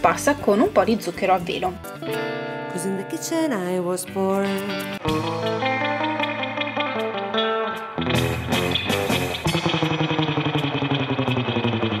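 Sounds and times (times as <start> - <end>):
instrumental music with quick pulse: 4.6 - 12.0.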